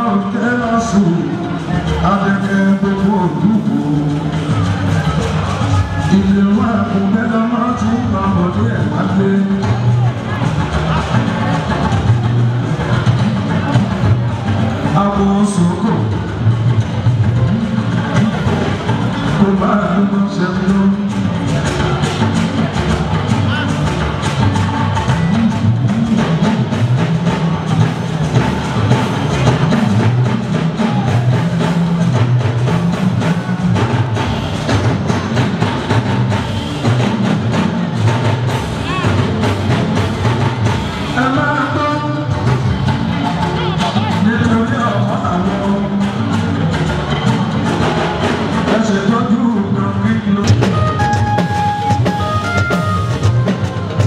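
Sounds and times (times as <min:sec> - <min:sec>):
dense drumming and percussion: 0:00.0 - 0:54.0
live band music: 0:00.0 - 0:54.0
voices: 0:00.0 - 0:54.0.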